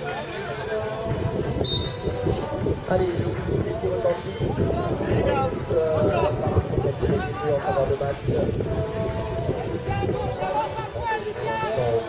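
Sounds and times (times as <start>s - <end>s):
wind buffeting microphone: 0.7s - 12.0s.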